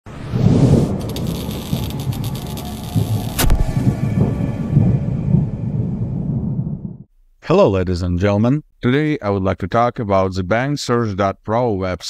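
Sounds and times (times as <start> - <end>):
crackling: 0.7 - 4.4
sharp hit: 0.7 - 6.5
deep pulsing rumble: 0.7 - 7.1.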